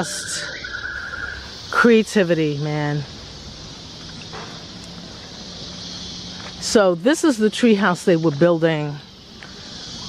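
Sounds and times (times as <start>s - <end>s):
steady high-pitched hiss: 0.0s - 10.0s.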